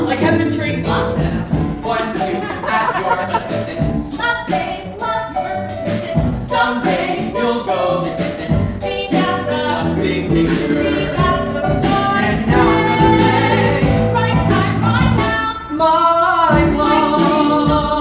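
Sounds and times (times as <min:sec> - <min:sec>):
keyboard: 0:00.0 - 0:15.7
man and woman singing: 0:00.0 - 0:18.0
drum hits: 0:08.2 - 0:15.4.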